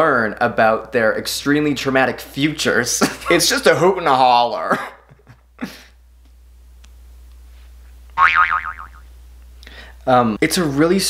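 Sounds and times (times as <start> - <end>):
cartoon boing: 8.2 - 9.1.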